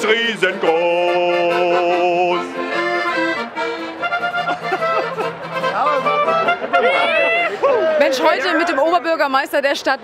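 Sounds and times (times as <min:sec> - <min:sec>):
accordion and clarinet folk tune: 0:00.0 - 0:08.9
voices talking: 0:03.1 - 0:10.0.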